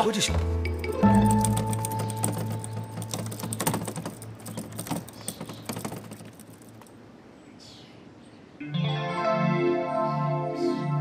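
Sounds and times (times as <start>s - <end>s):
rapid dry clicks: 1.2s - 6.9s.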